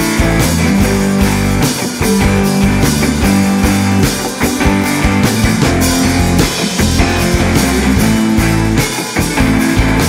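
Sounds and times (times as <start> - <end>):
drum kit with cymbals: 0.0 - 10.0
electric guitars: 0.0 - 10.0.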